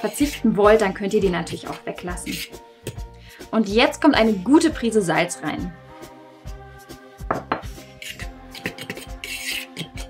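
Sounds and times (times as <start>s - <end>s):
metal utensil stirring flour in bowl: 0.0s - 2.5s, 8.0s - 10.0s
soft background music: 0.0s - 10.0s.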